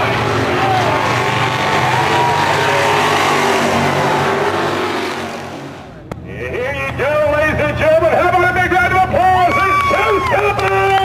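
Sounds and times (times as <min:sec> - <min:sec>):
stock car engines racing: 0:00.0 - 0:11.0.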